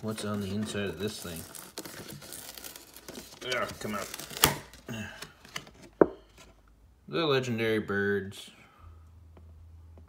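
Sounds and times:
cardboard snap: 4.3s - 4.7s.

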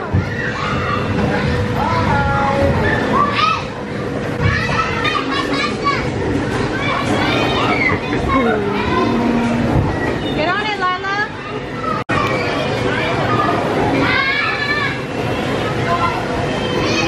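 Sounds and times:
children shouting and squealing: 0.0s - 1.6s, 2.8s - 10.4s, 11.3s - 17.0s.

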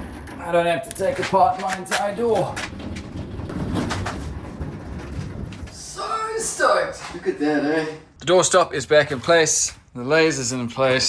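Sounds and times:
casters rolling over concrete: 0.0s - 7.6s.

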